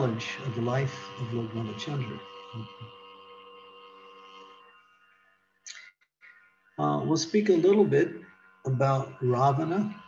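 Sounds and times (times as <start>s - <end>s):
faint hum of held tones: 0.0s - 10.0s.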